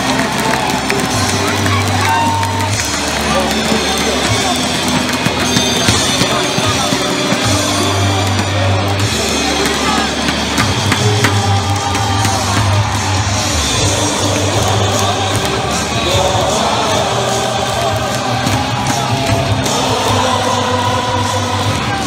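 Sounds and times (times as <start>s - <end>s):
crowd singing and chanting: 0.0s - 22.0s
drum-backed song over loudspeakers: 0.0s - 22.0s.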